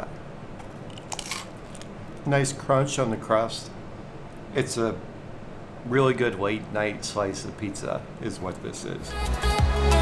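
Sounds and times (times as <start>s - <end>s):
pizza crust crunching: 1.0s - 1.9s.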